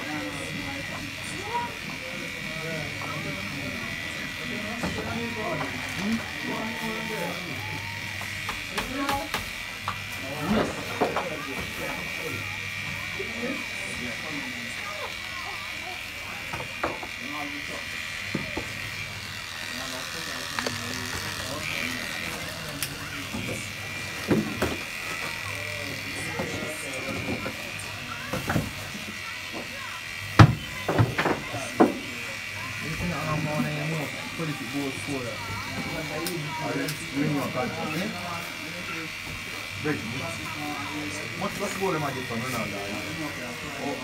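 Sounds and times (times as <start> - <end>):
electric hair clippers buzzing: 0.0 - 44.0.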